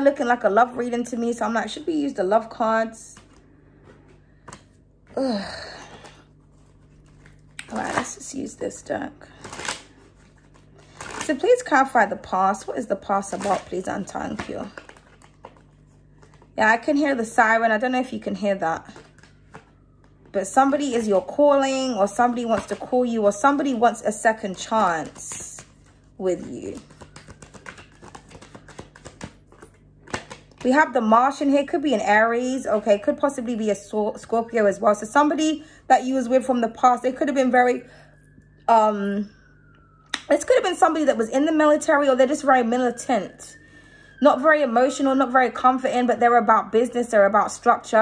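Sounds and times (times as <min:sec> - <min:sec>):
faint room hum: 0:00.0 - 0:48.0
cards being shuffled: 0:09.4 - 0:11.6, 0:13.2 - 0:16.6, 0:24.5 - 0:30.7.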